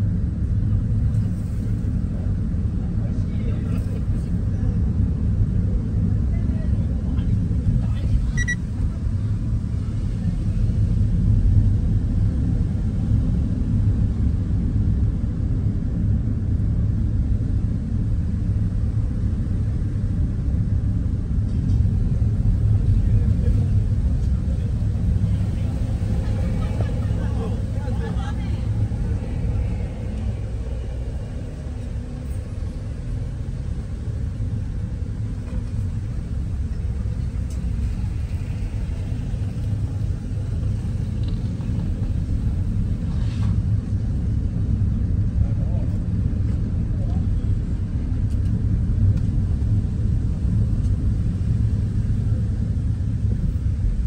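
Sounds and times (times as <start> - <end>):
car interior road rumble: 0.0 - 54.0.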